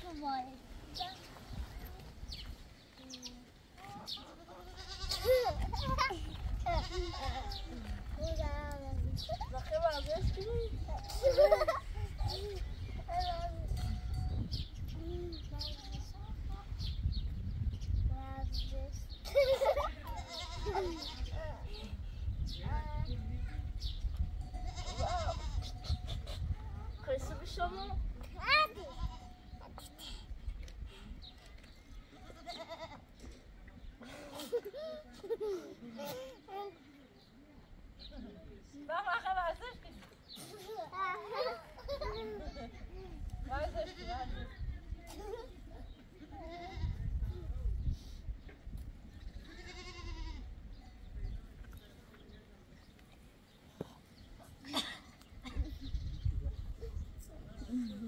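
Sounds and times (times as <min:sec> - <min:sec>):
young goat bleating: 0:04.2 - 0:05.8, 0:06.6 - 0:07.8, 0:20.0 - 0:21.4, 0:24.4 - 0:26.4, 0:28.9 - 0:29.4, 0:32.2 - 0:33.1, 0:43.7 - 0:44.5, 0:46.3 - 0:47.2, 0:49.2 - 0:50.6.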